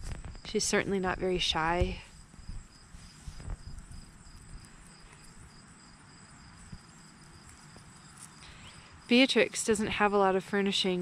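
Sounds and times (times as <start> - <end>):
soft low rumble: 0.0 - 8.4
insects chirping: 0.0 - 10.4.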